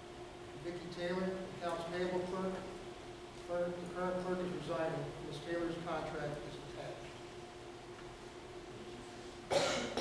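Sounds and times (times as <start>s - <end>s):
faint steady hum: 0.0s - 10.0s
person coughing: 9.5s - 10.0s.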